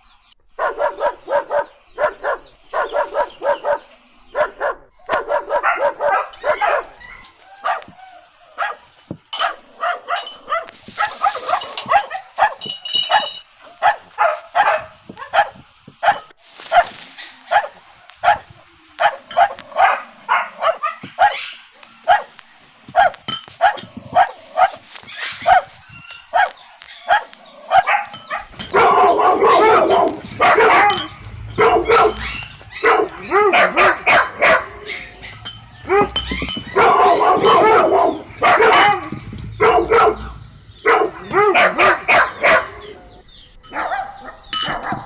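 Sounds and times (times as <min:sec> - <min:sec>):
puppies yipping: 0:00.0 - 0:45.0.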